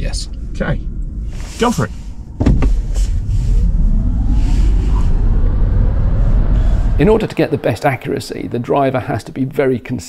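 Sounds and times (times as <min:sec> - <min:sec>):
tyres rumbling on road: 0:01.4 - 0:09.9.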